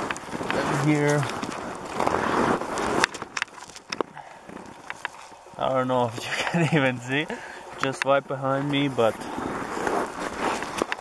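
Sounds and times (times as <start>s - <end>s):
jacket scraping against snow: 0.4s - 3.0s, 8.8s - 10.9s.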